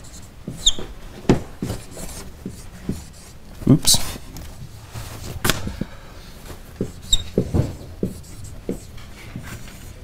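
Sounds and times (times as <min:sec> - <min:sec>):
marker squeak on whiteboard: 0:00.0 - 0:01.0, 0:06.9 - 0:07.5
marker knocking on whiteboard: 0:00.5 - 0:03.2, 0:06.8 - 0:09.6.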